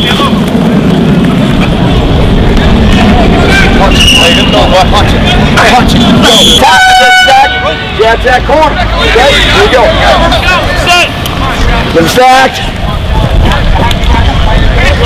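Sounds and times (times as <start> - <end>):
low rumble: 0.0 - 6.4
players and coaches shouting: 3.2 - 15.0
horn blast: 3.4 - 4.8, 5.4 - 8.1.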